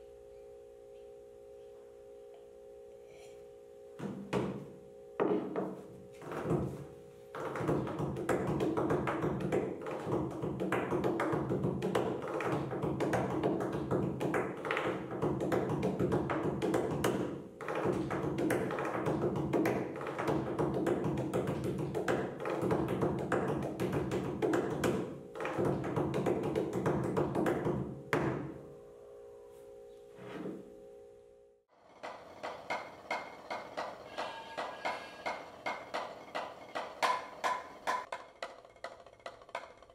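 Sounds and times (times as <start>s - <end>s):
fingers drumming on tabletop: 4.0s - 28.4s, 32.0s - 39.9s.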